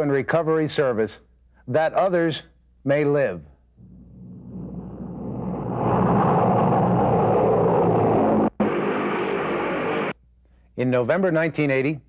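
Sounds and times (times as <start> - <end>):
loud rumbling roar: 3.8 - 10.1.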